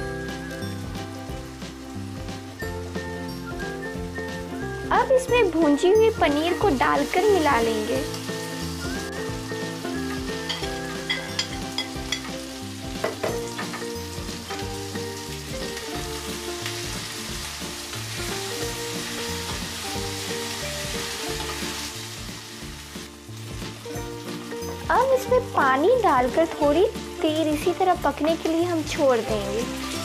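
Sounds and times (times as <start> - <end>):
food sizzling in a pan: 0.0 - 30.0
light background music: 0.0 - 30.0
spatula clinking against pan: 10.4 - 12.4.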